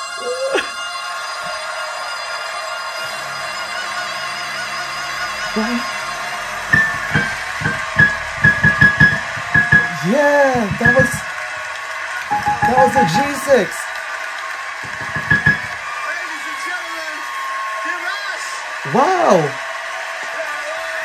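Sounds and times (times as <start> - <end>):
orchestral backing: 12.3 - 13.7
man singing high notes: 12.3 - 13.8.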